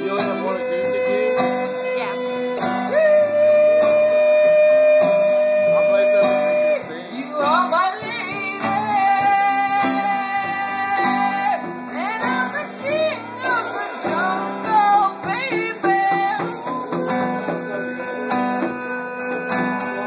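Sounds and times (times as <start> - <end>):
man singing wordless notes: 0.0 - 20.0
strummed acoustic guitar: 0.0 - 20.0.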